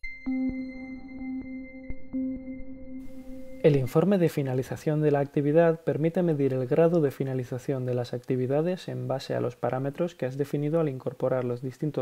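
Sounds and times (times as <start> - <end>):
soft electronic music: 0.0 - 12.0.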